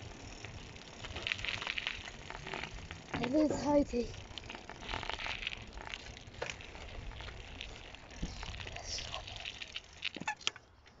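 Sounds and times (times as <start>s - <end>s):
bike clicks and rattles: 0.0s - 11.0s
bike tyre crunching on gravel: 0.0s - 11.0s
short squeaks: 10.1s - 10.7s.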